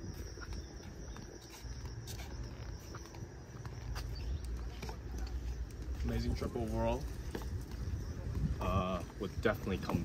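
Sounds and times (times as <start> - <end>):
footsteps in flip-flops on concrete: 0.0 - 10.0
wind rumble on microphone: 0.0 - 10.0.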